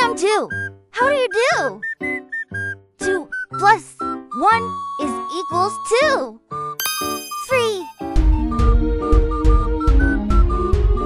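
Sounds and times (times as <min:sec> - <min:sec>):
bouncy children's music: 0:00.0 - 0:11.0
sparkling cartoon chime: 0:06.8 - 0:08.2.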